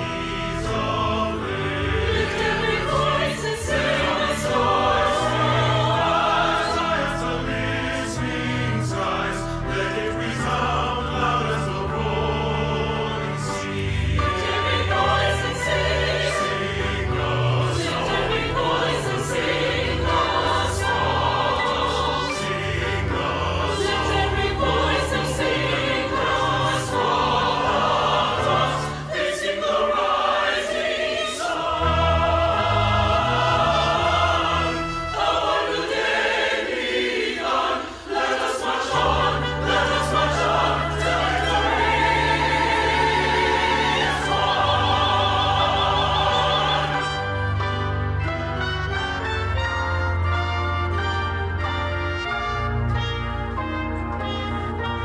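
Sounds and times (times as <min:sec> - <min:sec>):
choir singing: 0:00.0 - 0:55.0.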